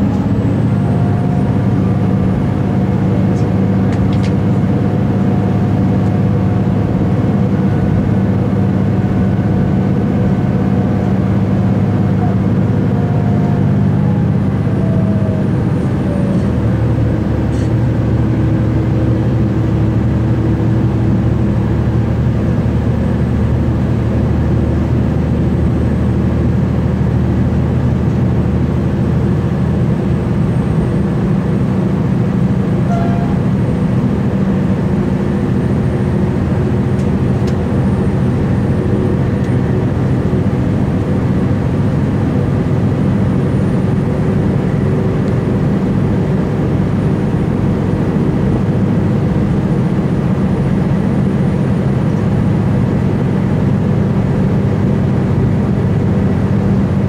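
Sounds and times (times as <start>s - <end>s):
diesel engine drone: 0.0s - 57.0s.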